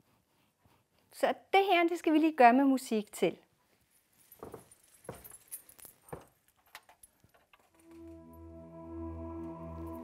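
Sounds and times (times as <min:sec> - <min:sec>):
coins on hip scarf jingling: 0:03.9 - 0:07.9
music with sustained notes and drone: 0:07.8 - 0:10.0.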